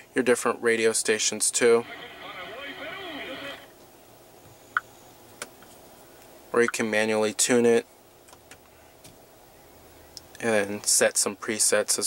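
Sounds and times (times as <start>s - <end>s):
faint voice on radio: 1.6s - 3.7s.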